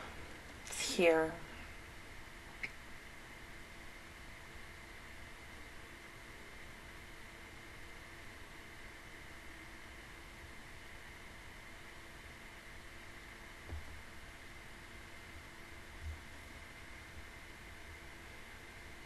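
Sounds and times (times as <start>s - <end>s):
open microphone hiss: 0.0s - 19.0s.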